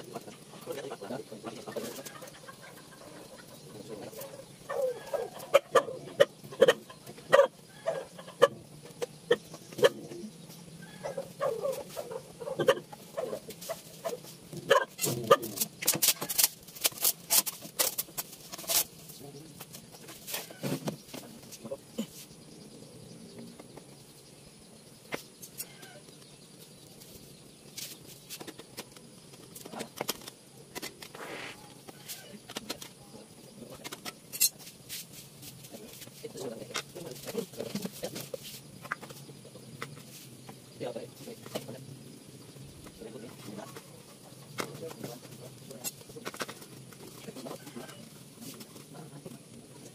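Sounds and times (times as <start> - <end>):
short clucking calls: 4.2 - 10.2.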